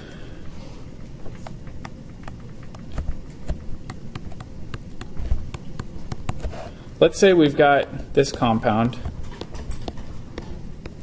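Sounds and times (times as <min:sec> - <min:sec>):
stylus tapping on tablet screen: 0:01.7 - 0:06.6, 0:08.2 - 0:11.0.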